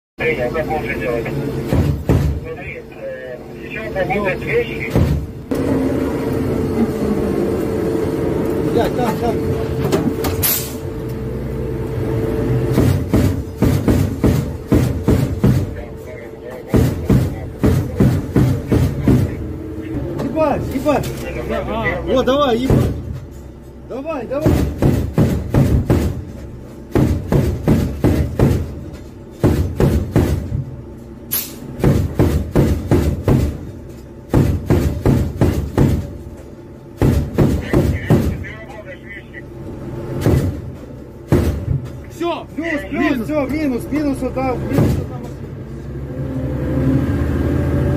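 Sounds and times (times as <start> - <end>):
vehicle engine rumbling: 0.2 - 47.9
sharp bangs: 0.9 - 2.8, 4.1 - 6.7, 8.7 - 21.4, 22.2 - 39.3, 39.9 - 42.3.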